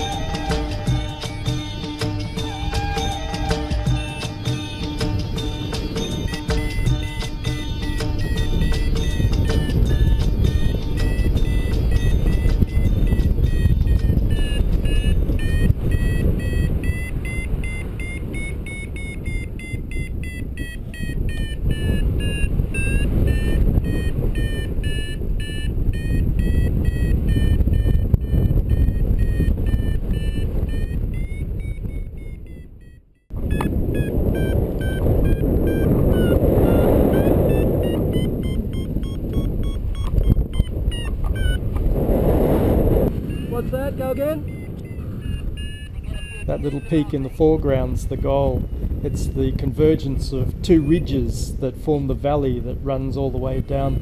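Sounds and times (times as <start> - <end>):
wind buffeting microphone: 0.0 - 54.0
variometer beeping: 5.6 - 41.9, 43.1 - 47.4, 50.6 - 51.2.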